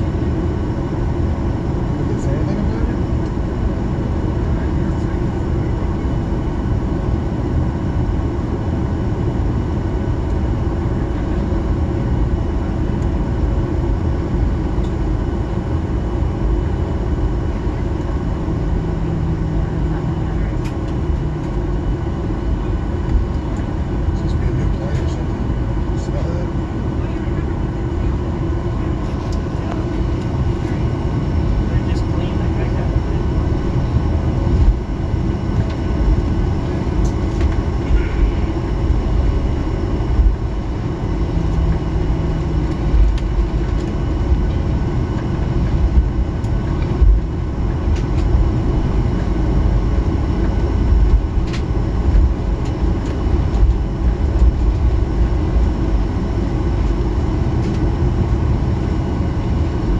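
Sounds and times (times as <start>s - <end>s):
faint steady whining tones: 0.0s - 59.9s
low rumble of jet engines idling: 0.0s - 59.9s.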